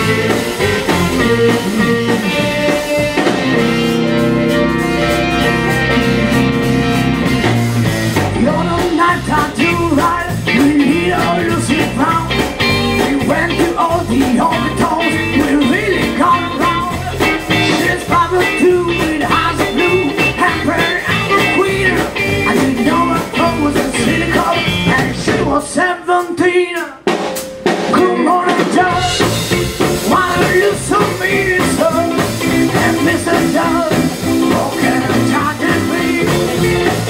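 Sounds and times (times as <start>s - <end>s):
bending lead melody: 0.0s - 25.3s, 27.1s - 37.0s
electric guitar: 0.0s - 25.6s, 27.1s - 37.0s
bass guitar: 0.0s - 37.0s
drum kit: 0.0s - 37.0s.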